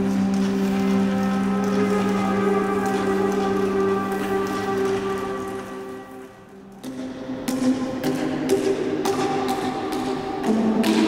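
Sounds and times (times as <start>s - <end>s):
rain-like rustling texture: 0.0s - 7.0s.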